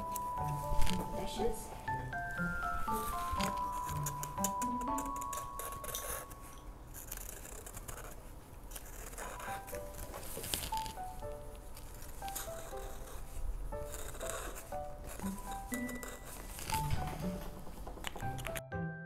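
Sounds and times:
plinking background music: 0.0s - 6.7s, 9.2s - 19.0s
marker drawing on paper plate: 2.8s - 10.9s, 11.8s - 17.6s.

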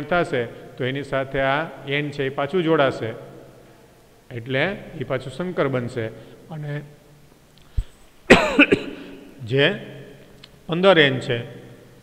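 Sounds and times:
man coughing: 8.3s - 9.4s.

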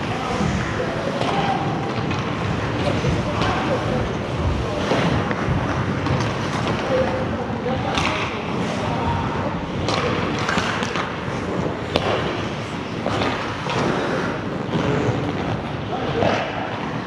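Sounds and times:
sticks and puck clacking: 0.0s - 17.0s
skate blades scraping ice: 10.3s - 17.0s.

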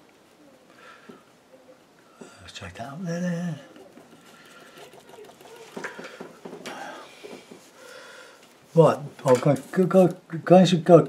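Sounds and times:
paintbrush dabbing on board: 3.6s - 7.8s.

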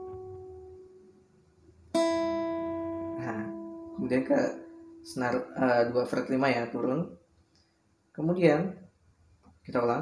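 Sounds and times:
acoustic guitar notes: 0.0s - 7.0s.

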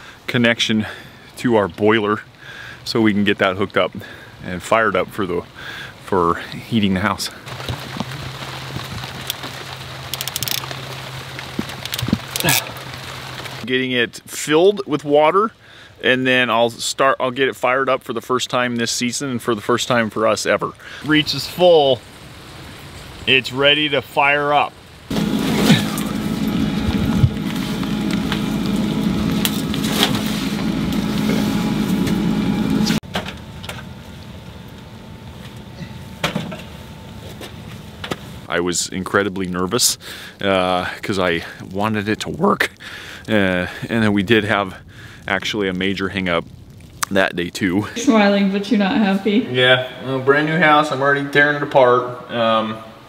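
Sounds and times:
rain falling: 0.4s - 53.0s
low steady hum: 24.9s - 41.6s.

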